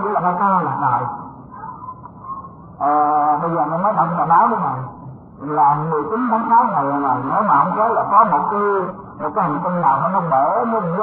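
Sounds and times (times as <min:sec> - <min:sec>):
man speaking: 0:00.0 - 0:01.2, 0:02.8 - 0:11.0.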